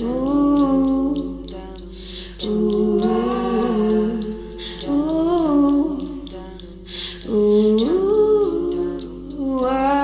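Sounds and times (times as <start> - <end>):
person humming a tune: 0.0 - 10.0.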